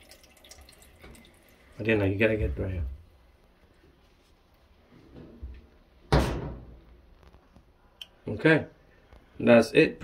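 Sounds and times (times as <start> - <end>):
washing machine drum bang: 6.1 - 6.8.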